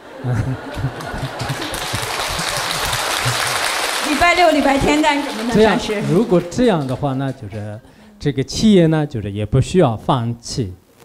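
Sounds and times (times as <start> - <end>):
audience applauding: 0.0 - 7.9
audience laughing: 0.0 - 7.9.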